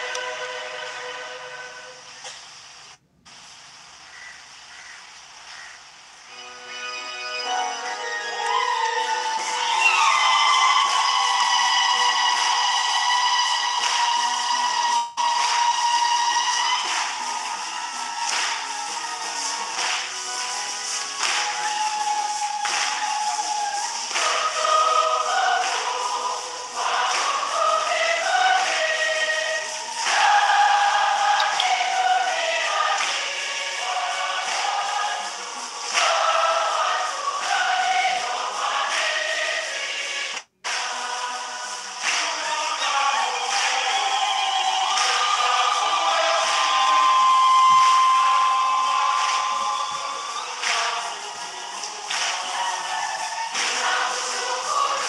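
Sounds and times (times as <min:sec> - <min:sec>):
choir singing a hymn: 0:00.0 - 0:02.4, 0:06.3 - 0:55.0.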